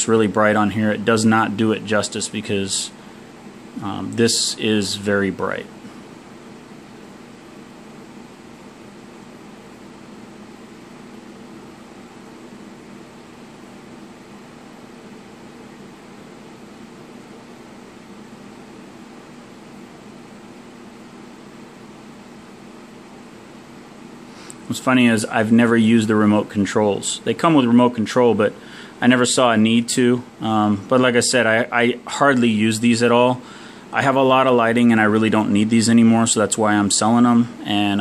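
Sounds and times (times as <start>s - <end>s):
faint low hum: 0.0s - 38.0s.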